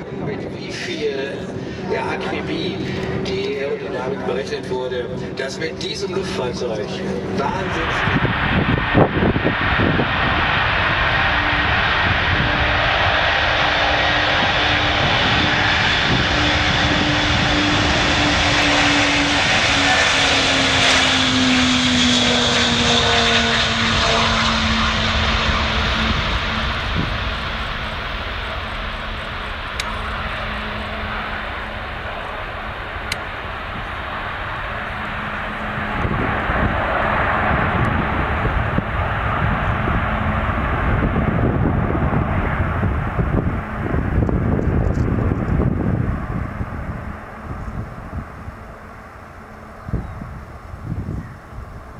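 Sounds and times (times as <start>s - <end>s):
jet engines roaring: 0.0s - 51.9s.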